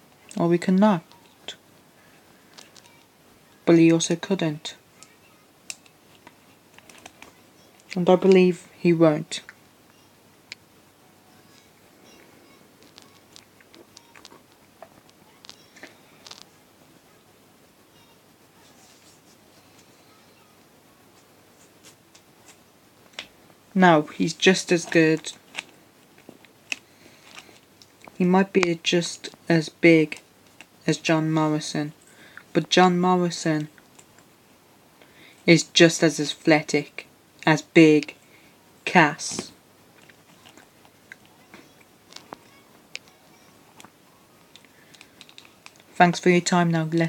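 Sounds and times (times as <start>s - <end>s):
faint hiss: 7.4s - 46.8s.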